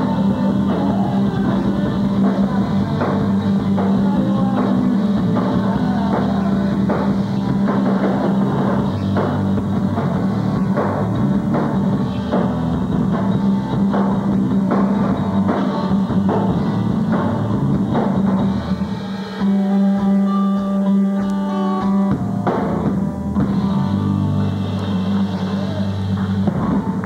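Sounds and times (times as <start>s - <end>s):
drum beats: 0.0s - 27.0s
rock band playing live: 0.0s - 27.0s.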